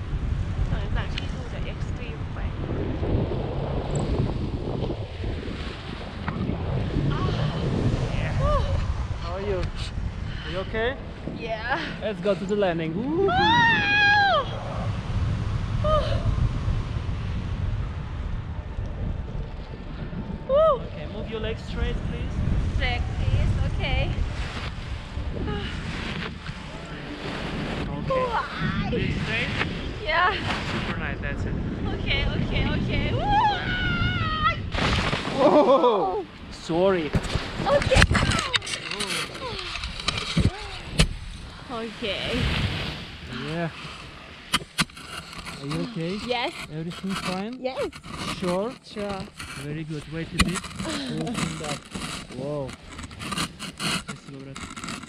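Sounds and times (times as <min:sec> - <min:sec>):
wind buffeting microphone: 0:00.0 - 0:55.0
person whooping: 0:13.2 - 0:14.6, 0:33.2 - 0:34.5.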